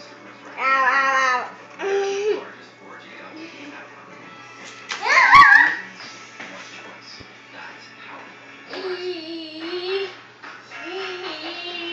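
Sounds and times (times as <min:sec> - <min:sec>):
dog whining yelp: 0:05.0 - 0:05.8.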